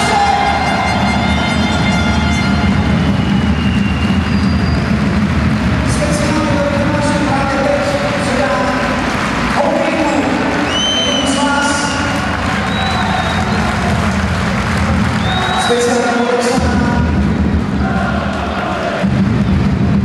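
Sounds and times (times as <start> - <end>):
rumble of the stands: 0.0 - 20.0
crowd chanting: 17.7 - 19.1.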